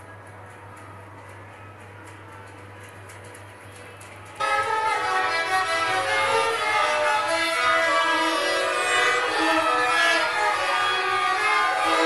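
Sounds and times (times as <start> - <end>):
violins playing together: 4.4 - 12.0.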